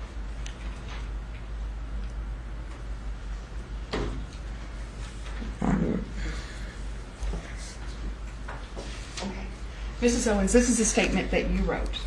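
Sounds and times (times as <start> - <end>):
woman moaning: 5.5 - 6.5.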